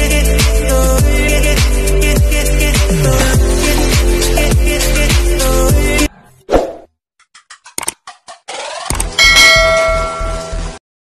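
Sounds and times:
quick clicks: 0:07.2 - 0:09.2
bright bell chime: 0:09.2 - 0:10.4.

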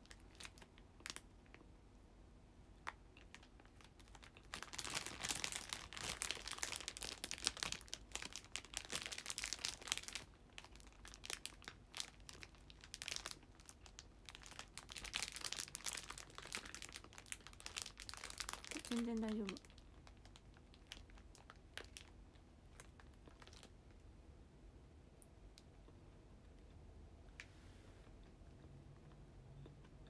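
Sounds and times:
plastic wrapper crackling: 0:00.0 - 0:01.6, 0:02.8 - 0:23.8.

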